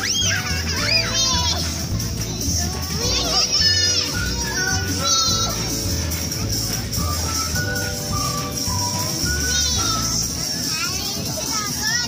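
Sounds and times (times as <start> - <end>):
music with low bass line: 0.0 - 10.4
children chattering and calling out: 0.0 - 12.0.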